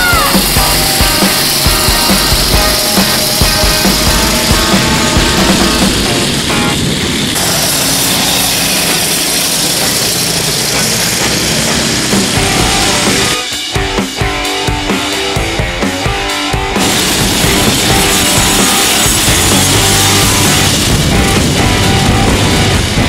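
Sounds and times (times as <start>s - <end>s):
loud rock music: 0.0s - 23.0s.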